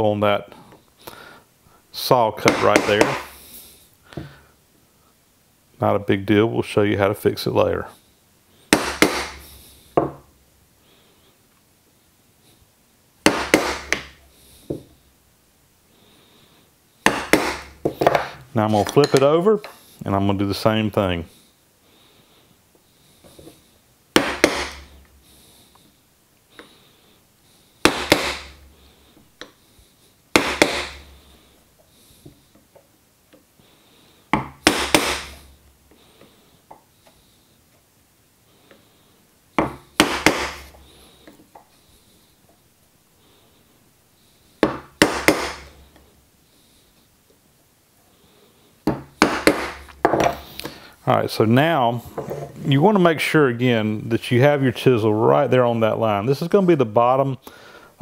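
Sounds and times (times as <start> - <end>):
wooden mallet tapping chisel: 2.5 - 3.3, 17.0 - 18.2, 24.2 - 24.8.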